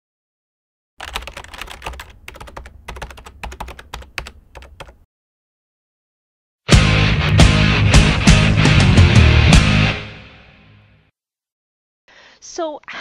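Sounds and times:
keyboard key clicks: 1.0s - 5.0s.

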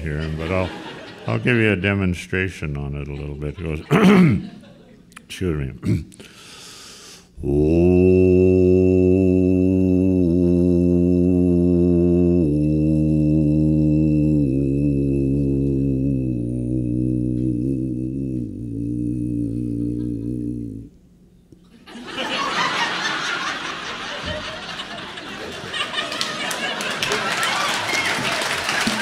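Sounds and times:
man throat singing: 3.8s - 4.6s, 5.7s - 6.6s, 7.2s - 21.0s
audience applause and voices: 25.4s - 29.0s.

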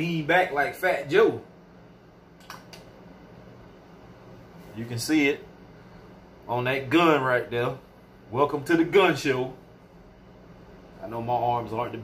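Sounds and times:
steady low hum: 0.0s - 12.0s
small click: 2.4s - 2.9s.

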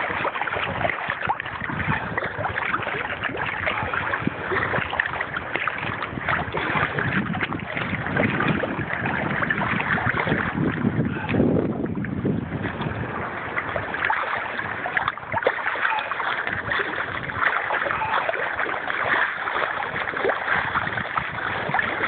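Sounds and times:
small waves lapping: 0.0s - 22.0s
wind noise on microphone: 0.0s - 22.0s.

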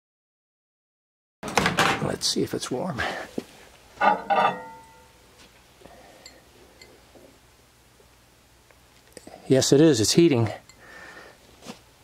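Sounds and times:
glass clinking on glass tray: 4.0s - 5.2s.

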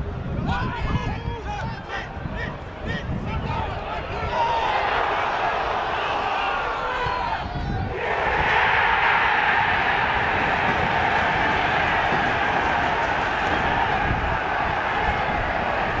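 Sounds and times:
stadium crowd cheering: 3.3s - 16.0s.

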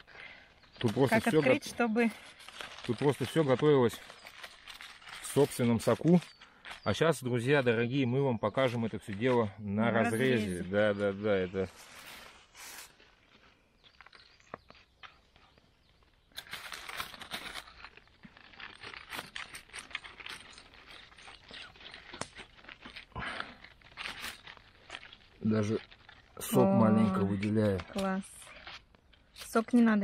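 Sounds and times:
foil crackling and rustling: 0.0s - 7.8s, 8.6s - 30.0s.

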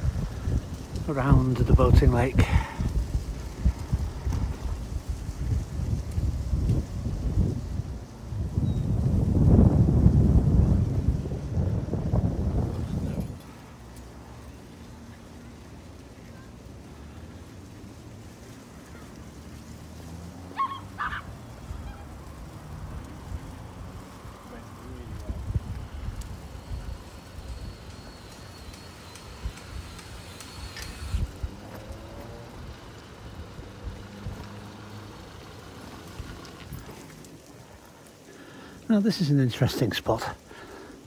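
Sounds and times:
bicycle tyres rolling on pavement: 0.0s - 41.0s
wind rumbling on microphone: 0.0s - 41.0s.

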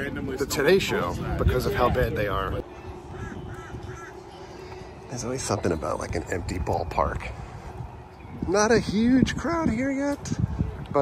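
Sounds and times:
crow cawing: 2.7s - 4.3s.

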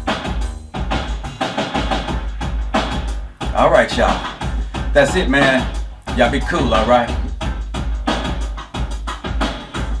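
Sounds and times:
drum machine beat: 0.0s - 10.0s
steady low bass: 0.0s - 10.0s.

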